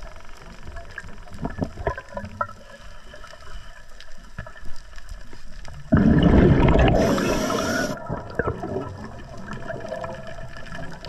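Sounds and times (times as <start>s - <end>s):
underwater exhaust bubbles: 0.0s - 11.0s
underwater rumble: 0.0s - 11.0s.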